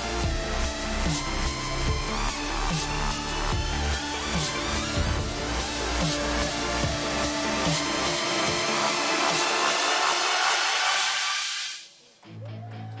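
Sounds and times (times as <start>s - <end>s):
trailer music: 0.0s - 13.0s.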